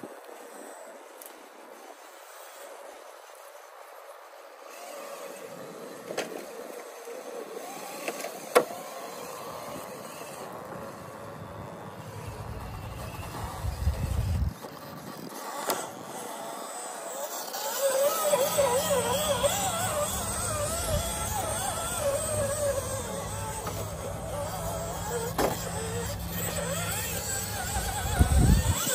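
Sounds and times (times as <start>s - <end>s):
electric motor whirring: 0.1s - 28.9s.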